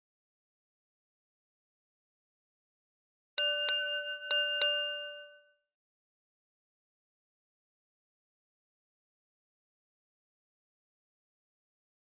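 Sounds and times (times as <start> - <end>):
bell strikes ringing: 3.4 - 5.5.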